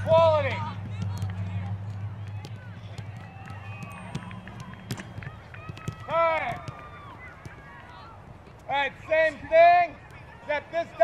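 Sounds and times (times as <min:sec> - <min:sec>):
balls being kicked: 0:00.0 - 0:11.0.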